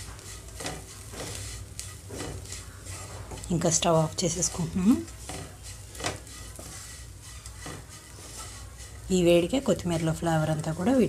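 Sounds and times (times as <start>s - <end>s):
faint sizzle: 0.0s - 11.0s
spatula scraping frying pan: 0.0s - 11.0s.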